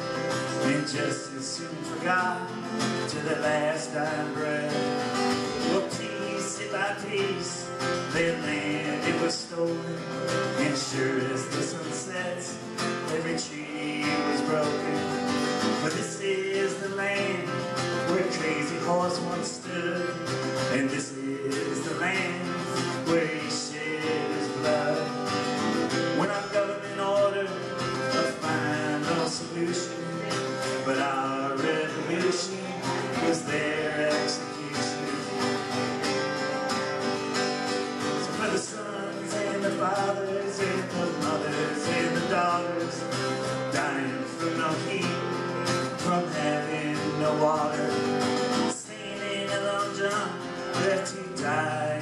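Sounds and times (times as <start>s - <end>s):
acoustic guitar strumming: 0.0s - 52.0s
man singing: 0.0s - 52.0s.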